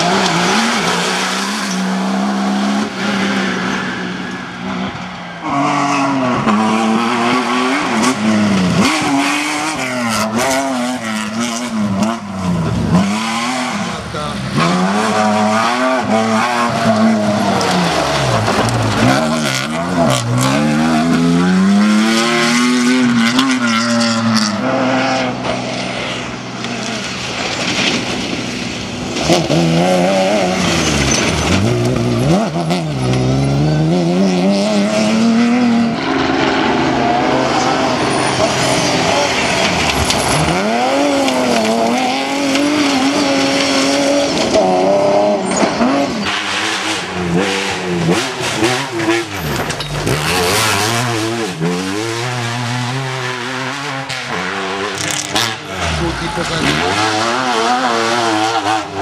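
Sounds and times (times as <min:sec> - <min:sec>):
rally car engines revving: 0:00.0 - 0:59.0
tyres throwing gravel: 0:26.6 - 0:32.4, 0:37.8 - 0:46.9.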